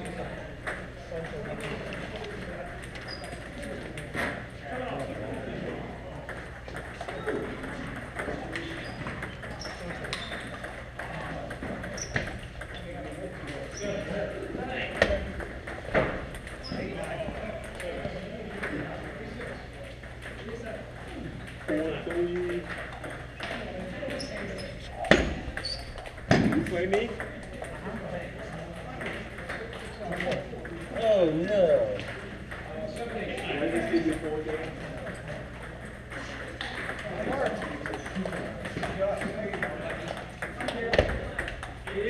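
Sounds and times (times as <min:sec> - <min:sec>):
table-tennis balls clicking: 0:00.0 - 0:42.0
voices in background: 0:00.0 - 0:42.0.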